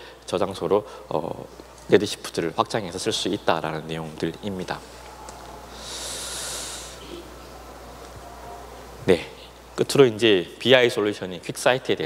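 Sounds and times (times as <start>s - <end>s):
breath drawn in near microphone: 5.7s - 7.2s.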